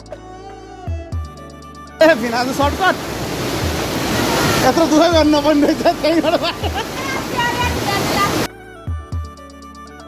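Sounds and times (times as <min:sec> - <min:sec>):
people talking: 0:02.0 - 0:03.0, 0:04.3 - 0:08.5
waterfall rushing over rock: 0:02.0 - 0:08.5.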